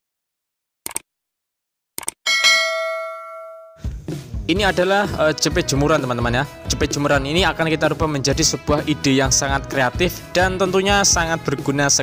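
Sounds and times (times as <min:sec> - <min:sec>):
notification bell ding: 0:02.3 - 0:03.9.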